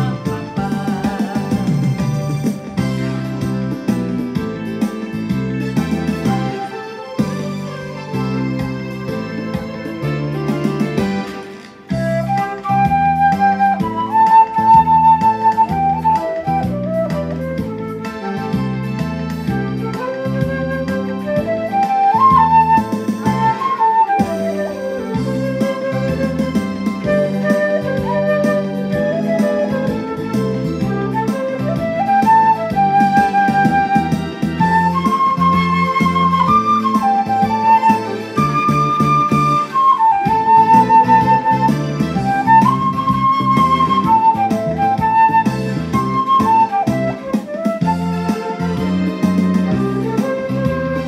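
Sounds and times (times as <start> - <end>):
flute playing slow melody: 0.0 - 51.0
instrumental accompaniment: 0.0 - 51.0.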